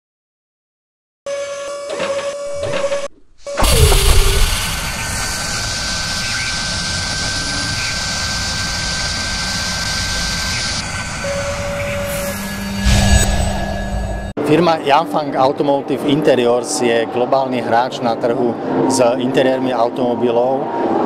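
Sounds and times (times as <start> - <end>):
high-pitched whine: 2.5 - 14.4
whoosh: 3.5 - 8.0, 12.0 - 14.3
heavy hit with falling tone: 3.5 - 9.3
loud hiss: 3.5 - 12.9.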